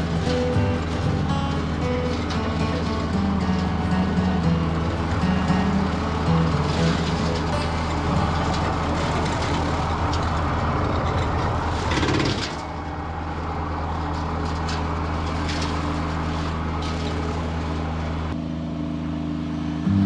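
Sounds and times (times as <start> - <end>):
rotary cutter mowing weeds: 0.0 - 18.4
tractor diesel engine hum: 0.0 - 20.0.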